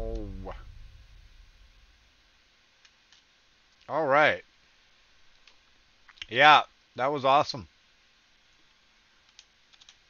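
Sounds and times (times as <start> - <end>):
man's wordless vocal sound: 0.0 - 0.7
computer mouse clicks: 9.3 - 10.0.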